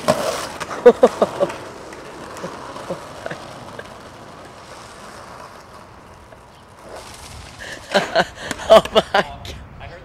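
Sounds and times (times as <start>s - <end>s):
faint street noise: 0.0s - 10.0s.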